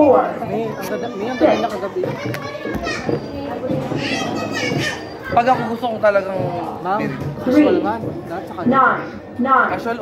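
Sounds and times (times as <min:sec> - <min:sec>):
people talking over one another: 0:00.0 - 0:10.0
children's voices: 0:00.3 - 0:06.1.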